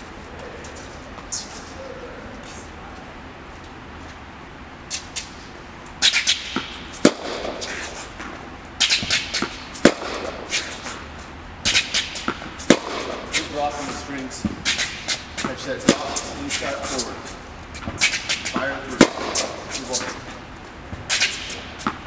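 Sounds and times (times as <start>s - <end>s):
shoe squeaks on hard court: 0.7s - 2.7s, 8.8s - 9.7s, 13.4s - 20.2s
ball bounces: 6.0s - 10.4s, 11.6s - 17.1s, 17.8s - 20.2s, 20.9s - 22.0s
tennis racket hits: 6.0s - 11.1s, 11.7s - 20.3s, 20.9s - 22.0s.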